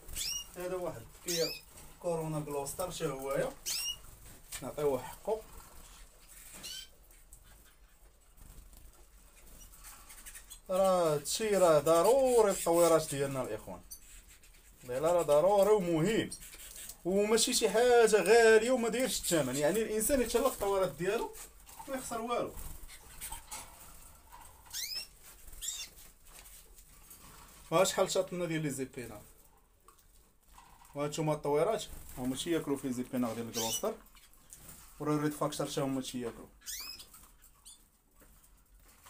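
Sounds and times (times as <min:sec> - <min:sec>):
bird chirp: 0:00.0 - 0:01.8, 0:03.5 - 0:04.1, 0:05.9 - 0:08.0, 0:09.2 - 0:11.0, 0:22.8 - 0:26.1, 0:33.4 - 0:34.6, 0:36.6 - 0:38.0
canaries chirping: 0:00.0 - 0:26.2, 0:30.8 - 0:39.0
faint rustling of birds: 0:00.0 - 0:39.0.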